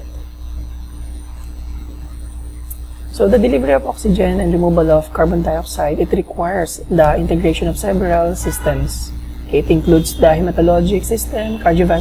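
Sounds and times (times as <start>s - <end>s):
low electrical hum: 0.0s - 12.0s
thin high steady tone: 0.0s - 12.0s.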